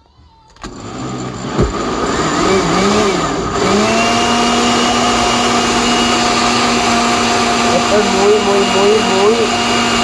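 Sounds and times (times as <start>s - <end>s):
blender motor running: 0.6s - 10.0s.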